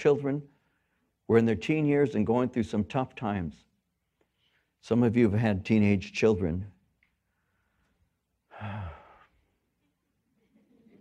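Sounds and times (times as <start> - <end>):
man sighing: 8.5 - 9.3.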